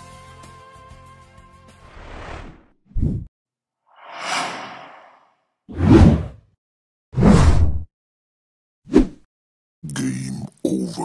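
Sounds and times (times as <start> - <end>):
whooshes: 3.9 - 6.4.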